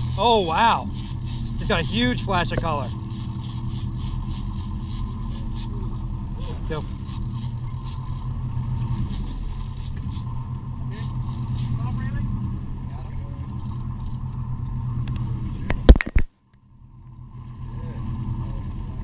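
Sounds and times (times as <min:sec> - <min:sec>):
boat engines droning: 0:00.0 - 0:19.0.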